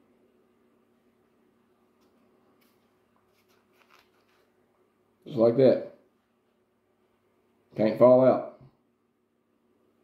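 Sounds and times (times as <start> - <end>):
faint steady hum: 0.0 - 10.0
fingers rustling a seedling: 2.0 - 4.6.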